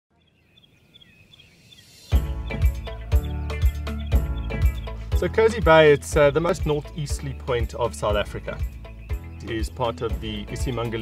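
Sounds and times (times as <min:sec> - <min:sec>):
bird chirping: 0:00.1 - 0:11.0.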